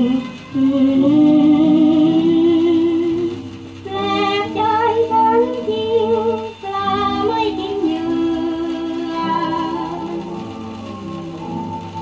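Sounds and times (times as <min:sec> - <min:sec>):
old song from a shellac record: 0:00.0 - 0:12.0.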